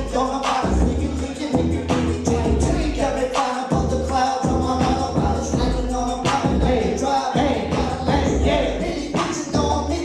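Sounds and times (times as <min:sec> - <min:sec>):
hip hop beat with heavy bass: 0:00.0 - 0:10.0
vocal line over beat: 0:00.0 - 0:10.0.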